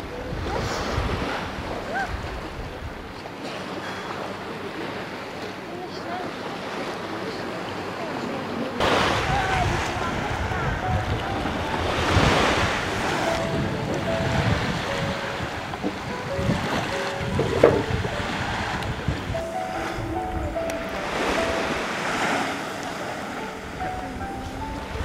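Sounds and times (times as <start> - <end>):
wind on microphone: 0.0 - 3.1, 8.8 - 22.4
sea water lapping: 0.0 - 25.0
thin melody of single notes: 9.9 - 25.0.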